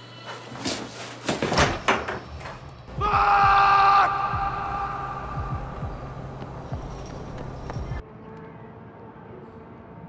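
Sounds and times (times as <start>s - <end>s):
man screaming: 2.9s - 5.8s.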